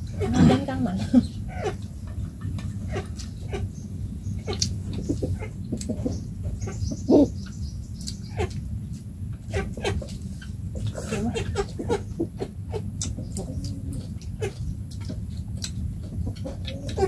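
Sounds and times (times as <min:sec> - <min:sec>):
low steady rumble: 0:00.0 - 0:17.0.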